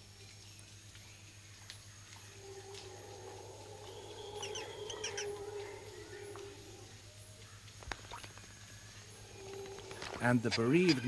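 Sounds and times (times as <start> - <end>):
faint low drone: 0.0 - 11.0.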